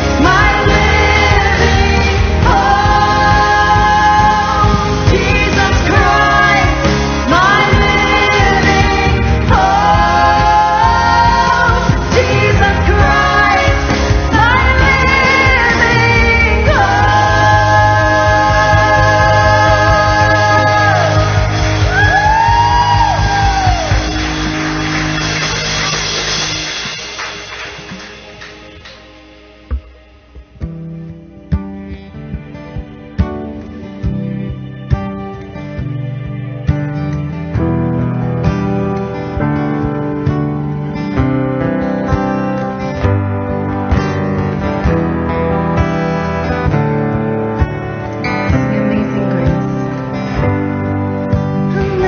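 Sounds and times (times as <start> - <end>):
woman singing lead vocal: 0.0 - 24.1, 48.5 - 49.9, 51.5 - 52.0
backing singers: 0.0 - 27.5
guitars: 0.0 - 52.0
keyboard: 0.0 - 52.0
worship band playing: 0.0 - 52.0.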